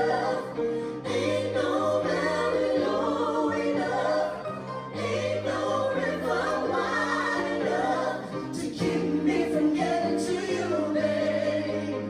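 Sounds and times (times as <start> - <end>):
group singing in harmony: 0.0 - 12.0.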